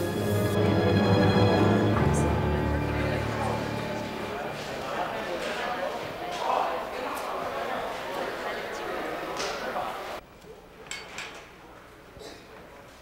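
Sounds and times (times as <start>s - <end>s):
loud background chatter: 0.6s - 13.0s.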